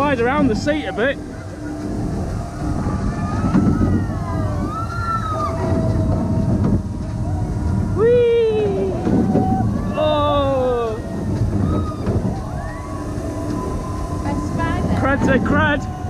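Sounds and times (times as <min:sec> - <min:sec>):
riders whooping: 0:00.0 - 0:16.0
roller coaster rumbling on track: 0:00.0 - 0:16.0
wind on microphone: 0:00.0 - 0:16.0.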